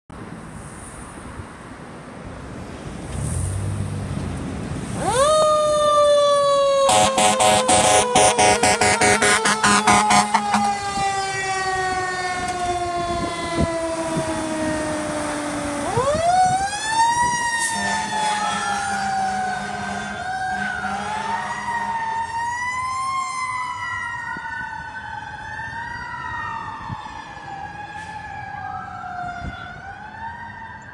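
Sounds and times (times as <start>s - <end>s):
fire engine siren wailing: 4.8s - 30.9s.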